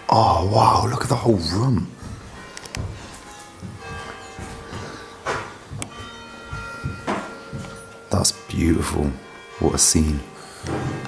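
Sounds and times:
church bells ringing: 0:00.0 - 0:11.0.

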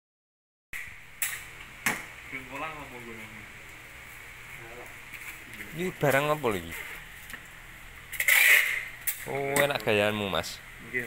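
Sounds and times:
room noise hiss: 0:00.8 - 0:11.0.

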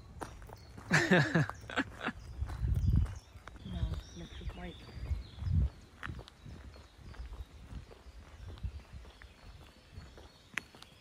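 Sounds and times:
footsteps on paved path: 0:00.0 - 0:11.0.

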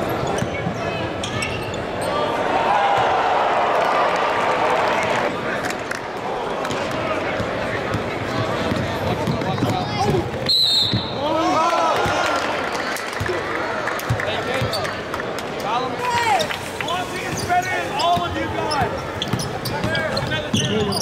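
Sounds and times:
sneakers squeaking: 0:00.0 - 0:02.2, 0:07.4 - 0:11.2, 0:14.1 - 0:15.0, 0:16.3 - 0:21.0
crowd chatter and calls: 0:00.0 - 0:21.0
basketball bouncing: 0:07.4 - 0:11.1, 0:18.2 - 0:20.8.

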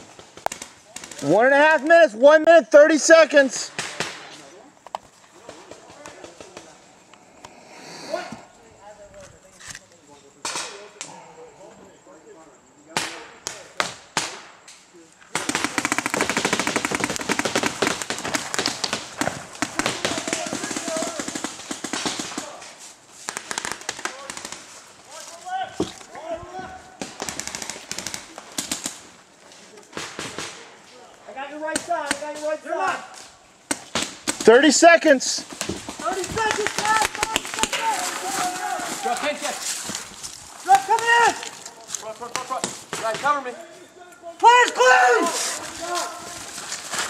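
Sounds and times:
paintball markers firing: 0:15.4 - 0:22.4, 0:27.0 - 0:29.0.

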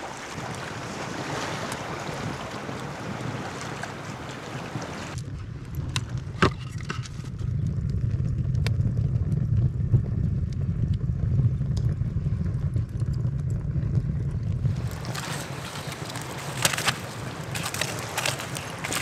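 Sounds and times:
low rumble of fire: 0:00.1 - 0:19.0
fire crackling: 0:05.1 - 0:19.0.

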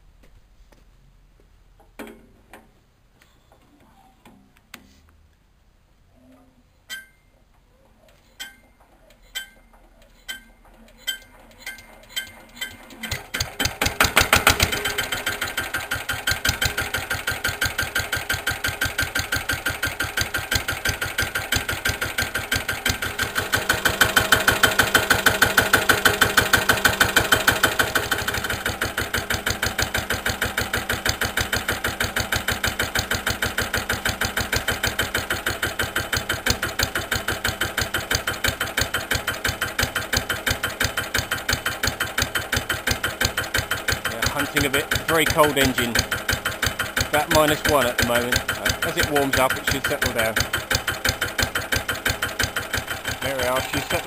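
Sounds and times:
diesel engine running: 0:13.1 - 0:54.0.

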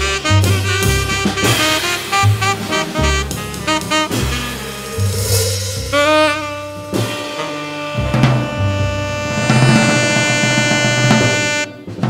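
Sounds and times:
upright bass: 0:00.0 - 0:11.7
drums: 0:00.0 - 0:12.0
saxophones holding a long note: 0:01.0 - 0:11.8.

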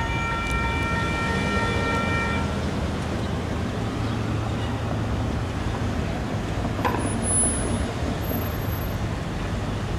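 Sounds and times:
traffic rumble: 0:00.0 - 0:09.9.

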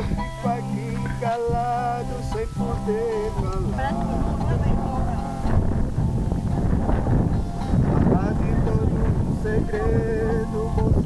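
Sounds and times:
acoustic guitar playing: 0:00.0 - 0:11.0
wind rumble on microphone: 0:00.0 - 0:11.0
people talking: 0:03.5 - 0:05.4, 0:08.1 - 0:10.5.

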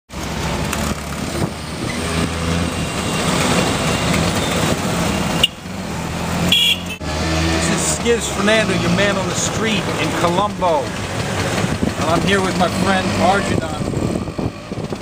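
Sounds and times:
city street traffic: 0:00.1 - 0:15.0
vehicle engines running: 0:00.1 - 0:15.0.

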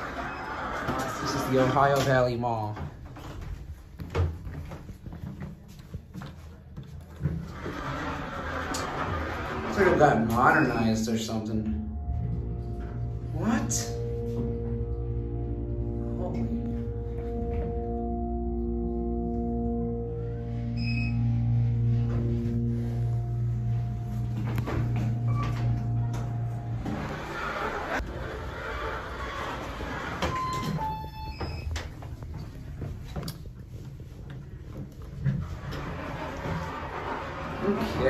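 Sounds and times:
elevator humming: 0:00.0 - 0:01.8, 0:07.2 - 0:38.0
elevator doors opening: 0:00.0 - 0:02.8, 0:07.2 - 0:32.5, 0:35.2 - 0:38.0
room background noise: 0:00.0 - 0:38.0.

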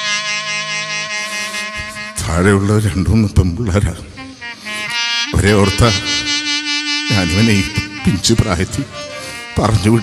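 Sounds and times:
reed instrument note buzzing: 0:00.0 - 0:10.0
man singing with vibrato: 0:04.0 - 0:10.0.

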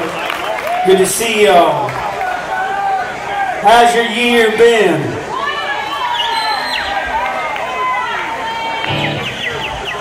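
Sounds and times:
audience chatter: 0:00.0 - 0:01.3, 0:01.9 - 0:10.0.

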